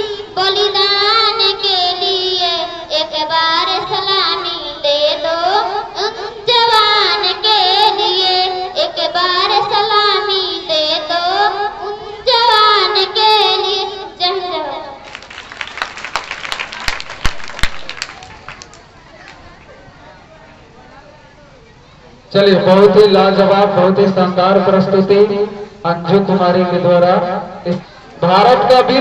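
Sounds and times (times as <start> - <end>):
girl singing into a microphone: 0.0 - 15.0.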